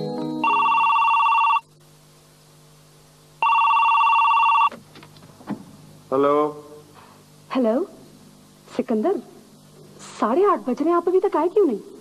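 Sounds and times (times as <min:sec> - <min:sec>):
telephone warbling ring: 0:00.4 - 0:01.7, 0:03.4 - 0:04.7.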